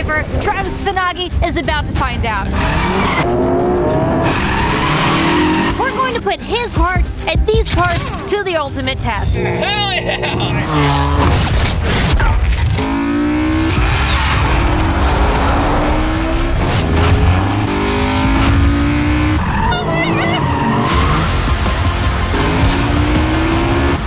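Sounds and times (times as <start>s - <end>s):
car engine revving hard: 10.2s - 11.3s, 12.6s - 24.0s.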